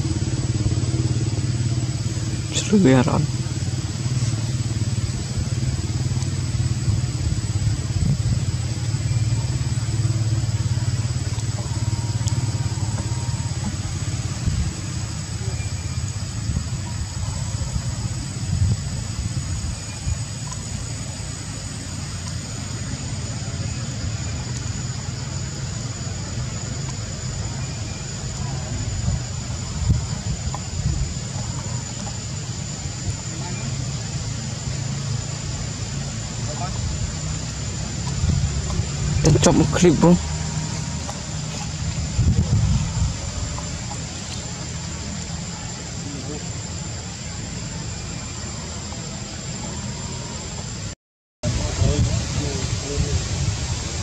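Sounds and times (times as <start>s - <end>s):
low rumble: 0.0s - 49.4s
even hiss: 0.0s - 54.0s
thin high whine: 0.0s - 54.0s.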